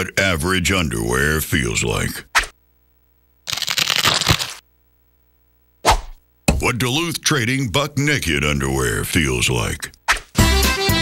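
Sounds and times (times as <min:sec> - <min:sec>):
meat grinder crunching: 0:03.5 - 0:04.6.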